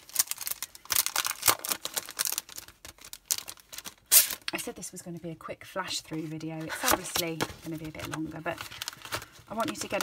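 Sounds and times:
plastic packaging crinkling: 0.0 - 4.7, 6.6 - 10.0.

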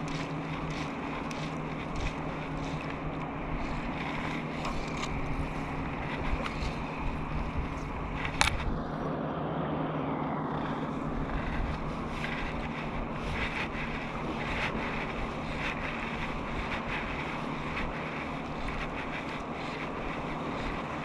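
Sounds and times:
small waves lapping: 0.0 - 8.7, 10.9 - 21.0
wind on microphone: 0.0 - 9.1, 10.2 - 21.0
steady low hum: 0.0 - 21.0.

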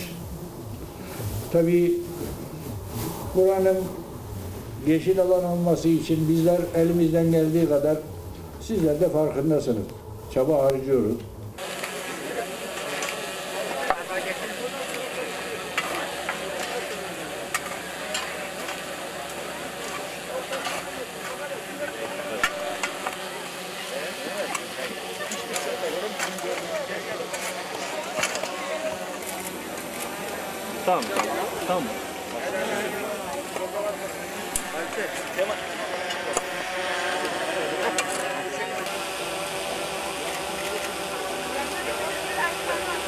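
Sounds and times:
crowd talking: 0.0 - 43.0
shovels scraping stony soil: 15.7 - 23.2, 24.5 - 30.4.

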